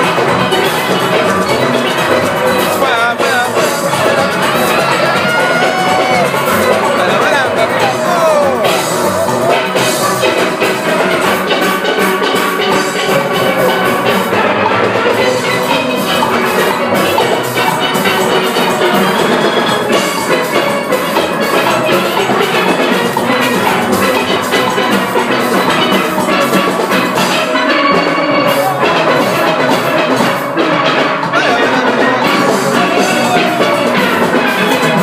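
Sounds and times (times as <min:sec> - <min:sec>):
drums keeping the beat: 0:00.0 - 0:35.0
steel pans playing fast tune: 0:00.0 - 0:35.0.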